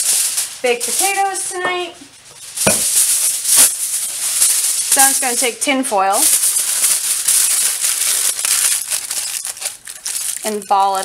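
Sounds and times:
aluminium foil crinkling: 0.0s - 11.0s
sharp knock: 2.7s - 2.9s.

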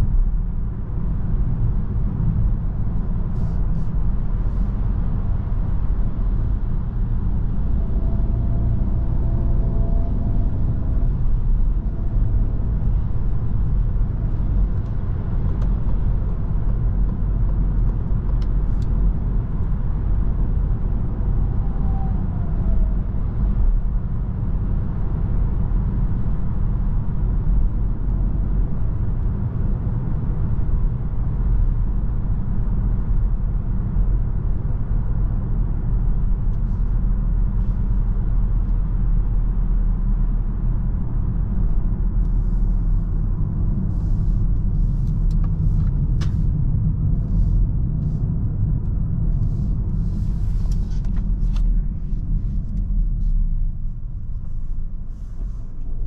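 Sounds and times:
car engine hum: 0.0s - 56.0s
tyres rumbling on road: 0.0s - 56.0s.

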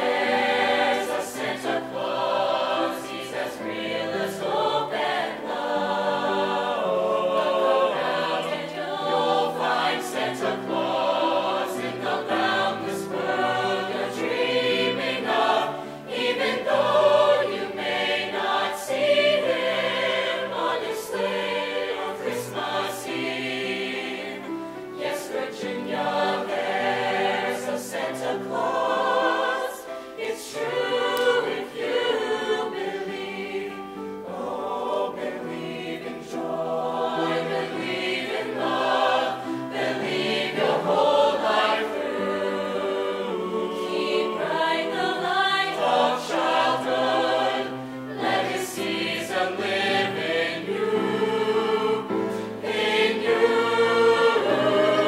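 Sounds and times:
choir singing in harmony: 0.0s - 55.0s.

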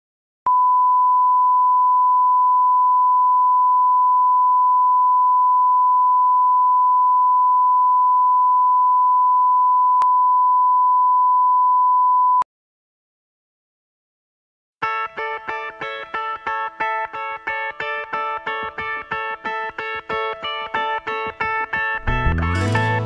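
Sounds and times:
electronic test tone beep: 0.5s - 12.4s.

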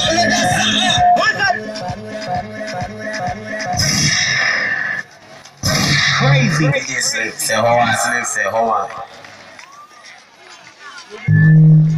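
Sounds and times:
faint crowd voices: 0.0s - 11.9s
man speaking: 6.2s - 9.0s.

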